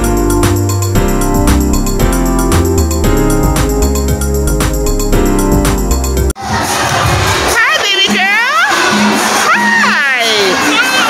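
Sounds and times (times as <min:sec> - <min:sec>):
music playing: 0:00.0 - 0:11.0
children shouting and squealing: 0:08.5 - 0:11.0.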